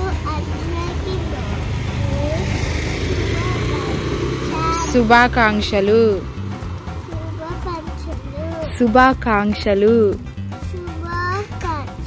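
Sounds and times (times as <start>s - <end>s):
child's voice close up: 0.0s - 2.6s, 3.3s - 4.9s, 7.2s - 8.7s, 10.8s - 12.0s
low outdoor rumble: 0.0s - 10.5s.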